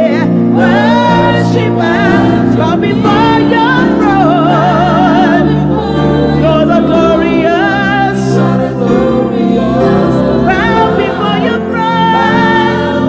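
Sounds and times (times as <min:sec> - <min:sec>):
other voices singing: 0:00.0 - 0:13.0
sustained keyboard chords: 0:00.0 - 0:13.0.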